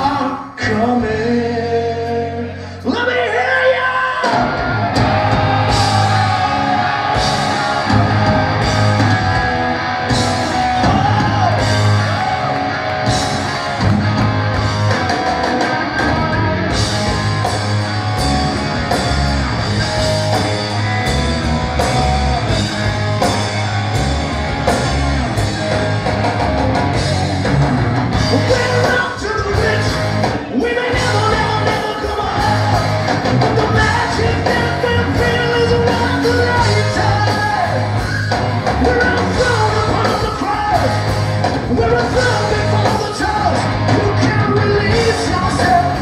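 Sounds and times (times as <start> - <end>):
male lead vocal: 0.0 - 9.3, 10.6 - 12.3, 28.2 - 37.9, 38.7 - 46.0
live hard rock band: 0.0 - 46.0.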